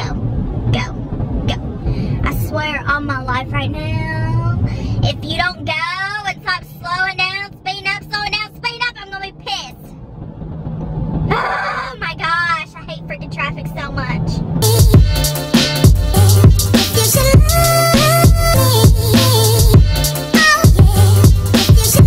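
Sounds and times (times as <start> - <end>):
car cabin hum: 0.0 - 22.0.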